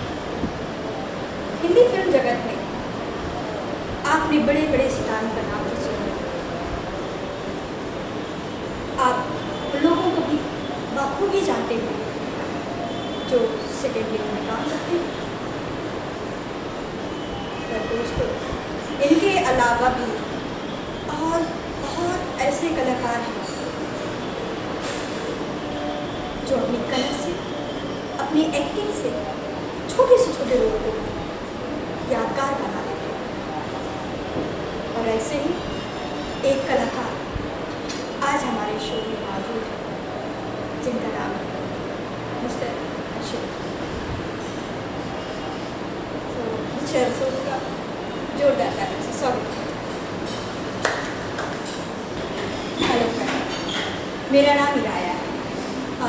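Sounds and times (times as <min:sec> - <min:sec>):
steady rumbling noise: 0:00.0 - 0:12.6
steady background hiss: 0:00.0 - 0:56.0.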